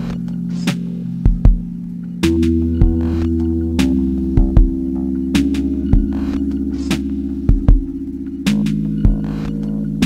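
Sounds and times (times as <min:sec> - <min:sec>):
held synth chords: 0:00.0 - 0:10.0
steady low bass: 0:00.0 - 0:10.0
sharp drum hits: 0:00.6 - 0:09.7.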